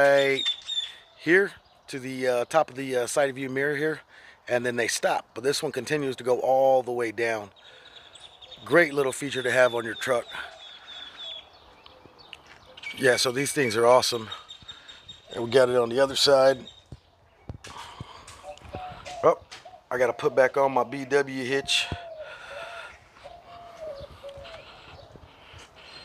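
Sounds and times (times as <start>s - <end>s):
bird calling low notes: 0.0s - 1.9s, 7.5s - 26.0s.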